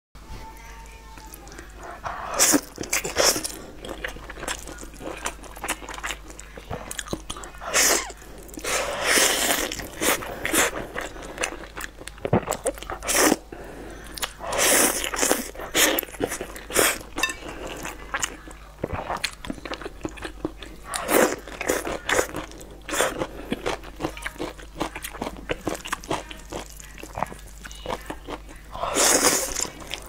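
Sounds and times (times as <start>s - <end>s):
noodles being slurped: 6.8s - 13.4s, 28.8s - 30.0s.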